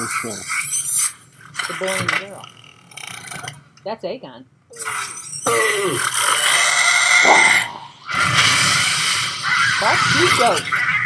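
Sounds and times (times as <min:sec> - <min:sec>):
dragon roaring and screeching: 0:05.4 - 0:11.0.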